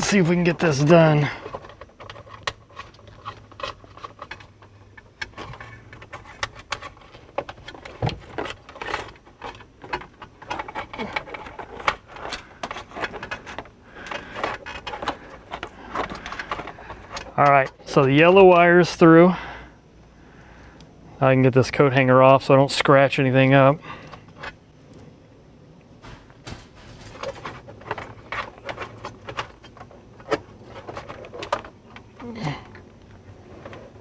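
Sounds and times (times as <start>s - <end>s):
wire clicking and scraping plastic: 0.0s - 19.1s, 25.8s - 34.0s.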